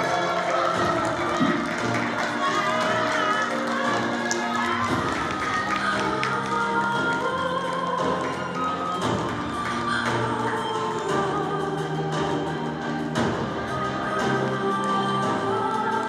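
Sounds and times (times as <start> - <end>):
music with long held notes: 0.0 - 16.0.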